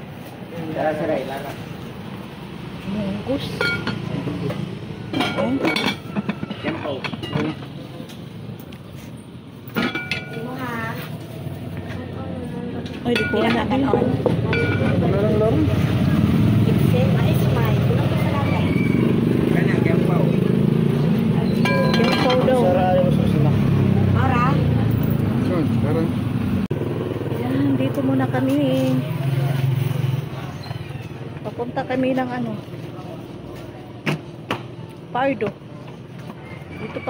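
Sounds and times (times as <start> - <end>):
street engines: 0.0 - 37.0
motorcycle engine humming: 1.1 - 36.7
indistinct voices: 10.1 - 26.4
metal clinks of cooking pot: 21.6 - 22.5.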